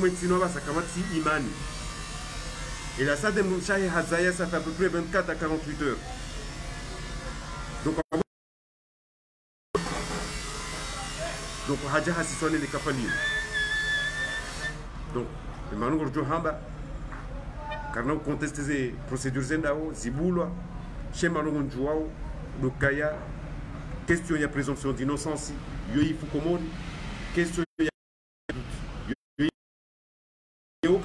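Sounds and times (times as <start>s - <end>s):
high-pitched whistle-like tone: 13.0s - 14.8s.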